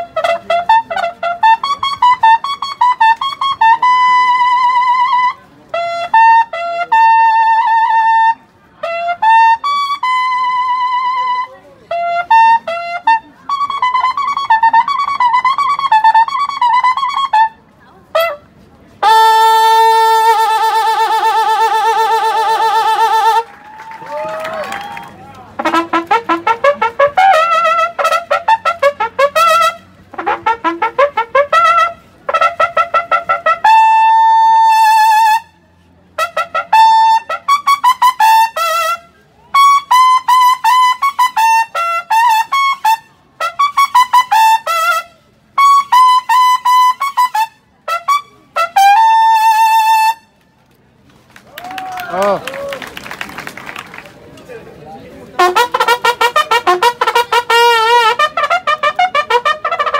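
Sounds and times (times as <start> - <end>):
military bugle calls: 19.0 - 35.4, 55.4 - 59.9.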